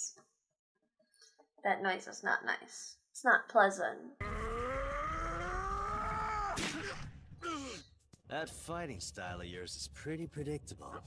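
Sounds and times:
pained groan: 4.2s - 7.8s
short falling cry: 4.2s - 7.8s.

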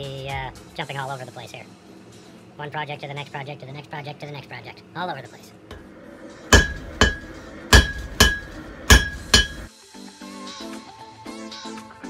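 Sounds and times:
hammer ringing on anvil: 6.5s - 9.7s.

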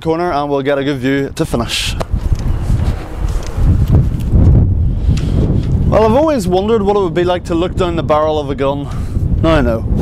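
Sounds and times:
wind buffeting microphone: 0.1s - 10.0s
footsteps while walking: 2.0s - 5.9s.

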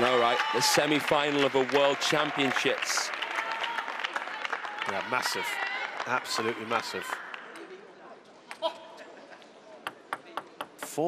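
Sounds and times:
arena applause: 0.0s - 7.8s.

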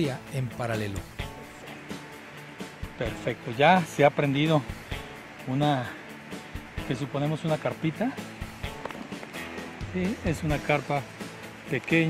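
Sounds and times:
background music with soft beat: 0.0s - 12.0s.

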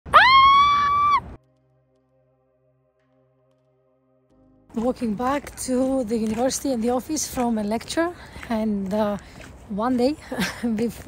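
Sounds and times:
woman screaming excitedly: 0.1s - 1.4s.

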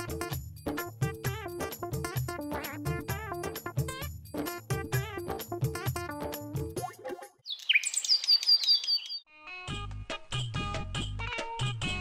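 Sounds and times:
background music with keyboard: 0.0s - 6.9s
birds chirping: 7.4s - 9.2s.

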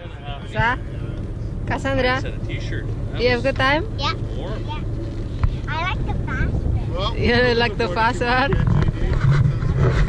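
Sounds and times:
motorboat engine rumble: 0.0s - 10.0s
wind buffeting microphone: 0.0s - 10.0s.

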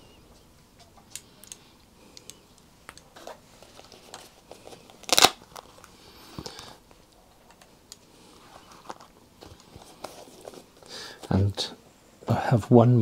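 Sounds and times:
velcro ripping: 5.0s - 5.7s.

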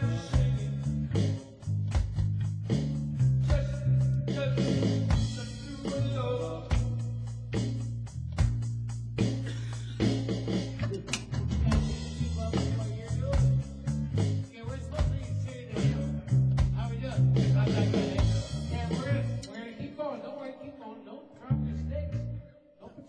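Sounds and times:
bass guitar note: 0.0s - 19.5s, 21.4s - 22.5s
live band playing: 0.0s - 19.5s.

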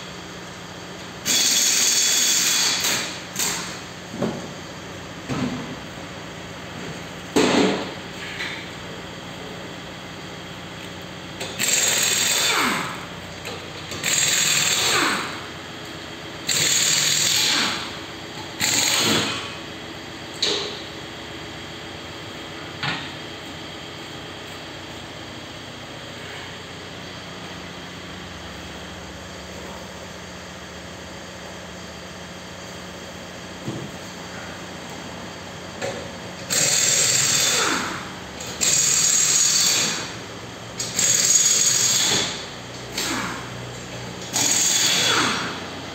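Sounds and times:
pneumatic tool whining: 1.2s - 3.9s, 11.4s - 15.6s, 16.4s - 19.6s, 35.8s - 43.6s, 44.2s - 45.7s.

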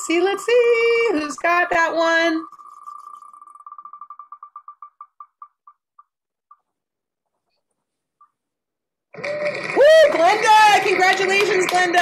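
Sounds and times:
spinning wheel ticking: 0.0s - 6.7s.

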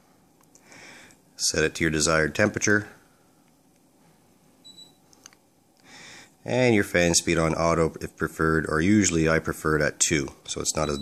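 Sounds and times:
short high electronic beep: 10.8s - 11.0s.

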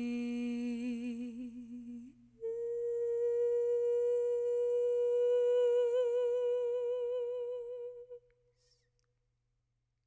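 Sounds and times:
woman singing a long high note: 0.0s - 8.2s.

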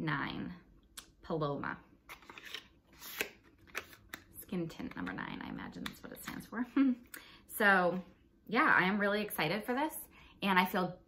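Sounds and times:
package clicks and rustles: 2.1s - 4.3s.

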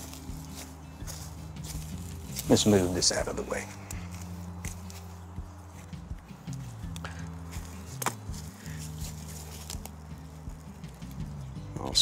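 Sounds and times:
footsteps on pine needles: 0.0s - 11.8s
dry branches crunching and snapping: 0.0s - 12.0s
soft background music: 0.0s - 12.0s.

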